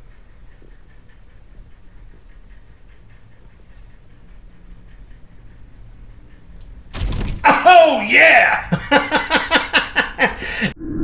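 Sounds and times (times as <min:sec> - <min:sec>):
faint ticks: 0:00.0 - 0:06.8
quiet low hum: 0:00.0 - 0:11.0
snake striking: 0:06.9 - 0:07.6.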